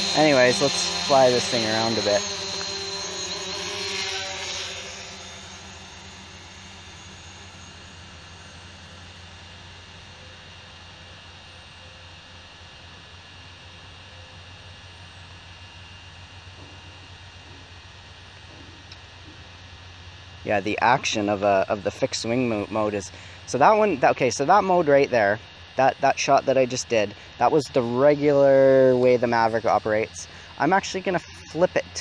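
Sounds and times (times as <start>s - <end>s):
drone propellers whining: 0.0s - 10.7s, 16.0s - 32.0s.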